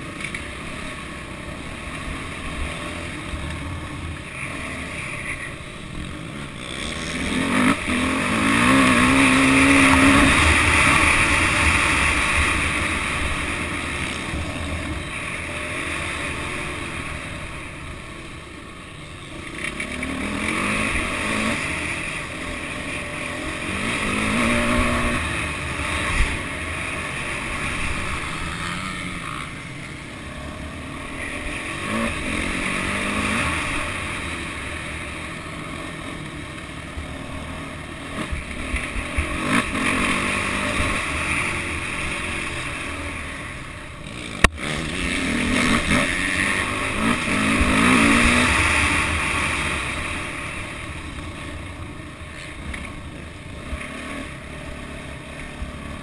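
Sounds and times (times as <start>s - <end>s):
motocross bike engine revving: 0.0s - 56.0s.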